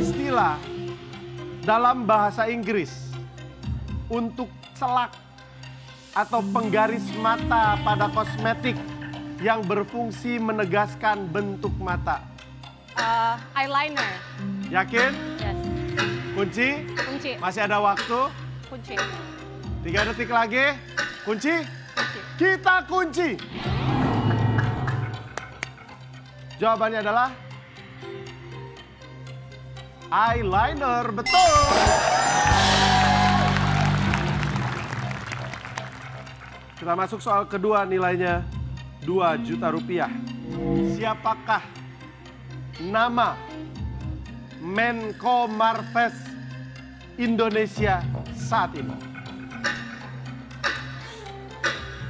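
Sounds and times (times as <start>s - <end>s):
countdown timer ticking: 0.0s - 23.5s, 24.5s - 52.0s
low background music drone: 0.0s - 52.0s.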